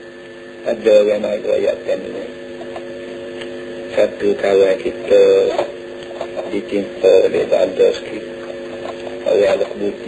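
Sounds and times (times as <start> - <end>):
hum of held low tones: 0.0 - 10.0.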